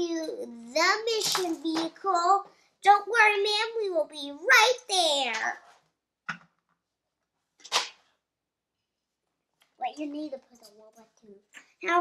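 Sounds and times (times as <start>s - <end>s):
plastic pieces clack and rustle: 1.1s - 2.0s
plastic toy pieces clicking: 1.2s - 1.6s.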